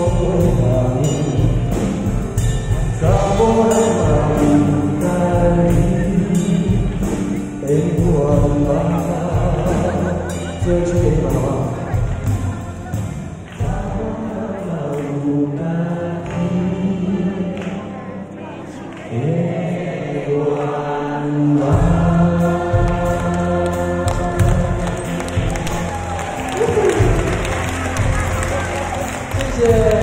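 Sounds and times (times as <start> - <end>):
band with electric guitars: 0.0 - 19.1, 21.6 - 30.0
man singing into a microphone: 0.0 - 25.6, 29.3 - 30.0.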